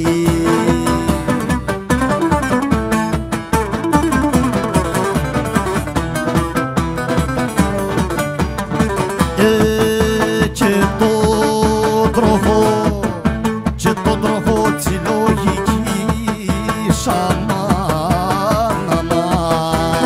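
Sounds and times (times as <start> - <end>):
lutes picking fast melody: 0.0 - 20.0
steady drum beat: 0.0 - 20.0.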